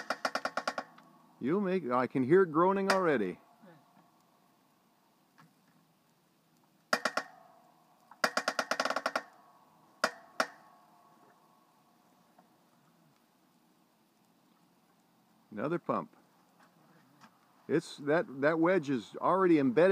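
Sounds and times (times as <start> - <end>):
creaking clicks: 0.0 - 1.1, 8.0 - 9.4
log cracking under splitter: 0.0 - 1.4, 2.6 - 3.4, 5.2 - 11.4.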